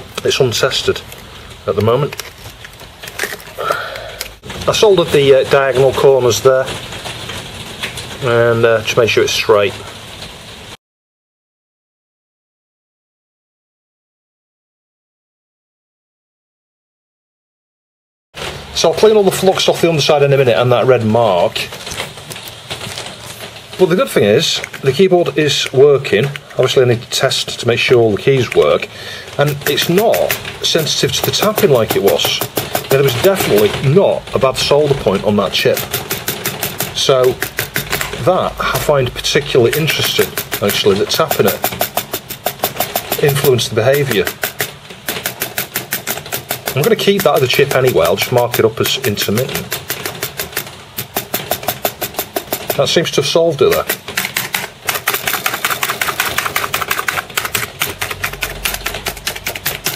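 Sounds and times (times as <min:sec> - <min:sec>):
person speaking: 0:00.0 - 0:06.8, 0:18.6 - 0:59.9
handling noise: 0:00.0 - 0:08.2, 0:18.4 - 0:59.9
plastic keyboard keys clacking: 0:29.4 - 0:59.9.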